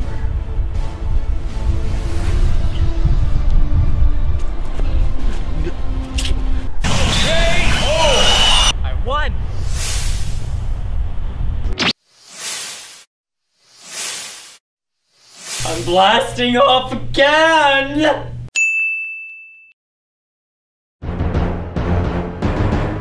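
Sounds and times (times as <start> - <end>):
wind rumbling on microphone: 0.0 - 6.9, 8.7 - 11.8
whoosh sound effects: 11.7 - 14.6, 15.2 - 15.8.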